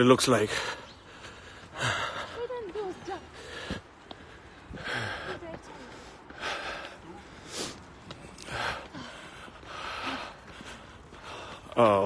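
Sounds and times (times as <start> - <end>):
person breathing hard: 0.5 - 2.4, 3.3 - 11.8.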